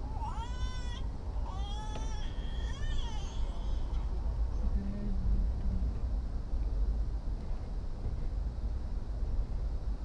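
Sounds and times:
small child whining cries: 0.0s - 4.2s
passenger train rumbling: 0.0s - 10.0s.

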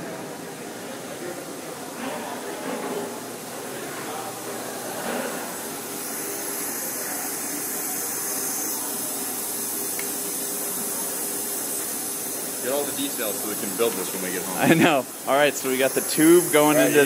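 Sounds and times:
steady hiss from pipework: 0.0s - 17.0s.

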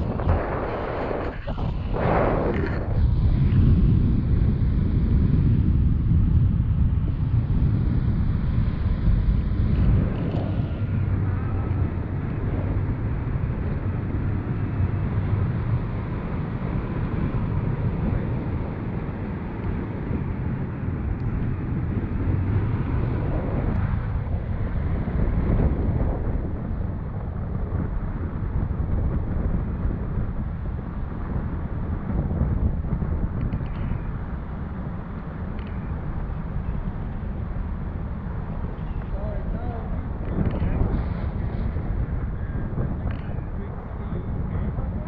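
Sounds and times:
wind buffeting microphone: 0.0s - 45.0s.

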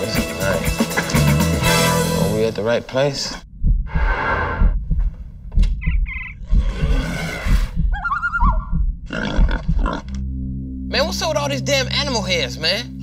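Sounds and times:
music with low thudding pulses: 3.5s - 13.0s
animal growls and roars: 6.4s - 7.8s.

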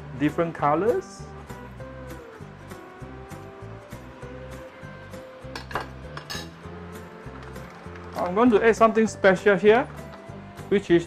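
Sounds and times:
metal spoon on ceramic plate: 5.6s - 6.5s.

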